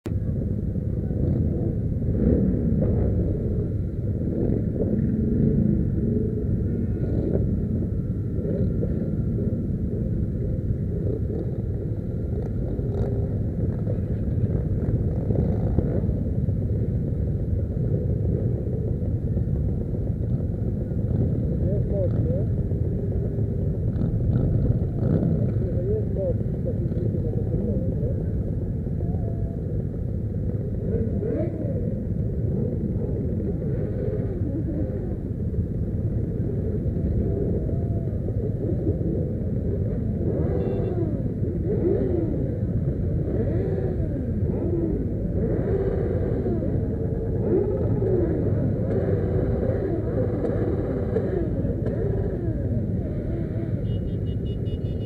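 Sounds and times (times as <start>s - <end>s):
motorcycle engines rumbling: 0.0s - 55.0s
people's voices: 20.8s - 55.0s.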